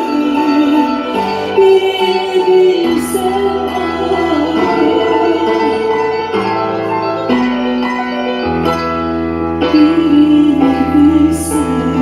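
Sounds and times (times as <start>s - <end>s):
woman singing into a microphone: 0.0s - 6.6s, 9.6s - 12.0s
ensemble holding chords: 0.0s - 12.0s.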